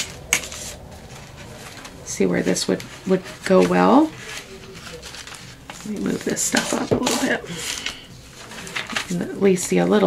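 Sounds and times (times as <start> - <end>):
paper handling: 0.0 - 10.0.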